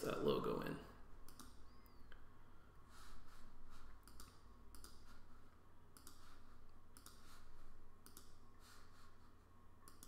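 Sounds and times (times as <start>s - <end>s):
computer mouse clicking: 1.2s - 2.2s, 4.0s - 5.2s, 5.9s - 8.4s.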